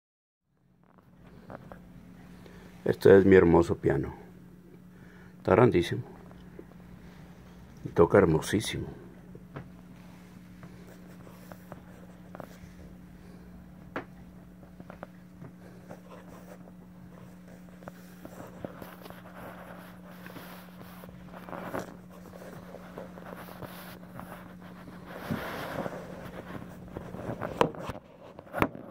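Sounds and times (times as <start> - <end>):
faint electrical hum: 0.5 - 28.9.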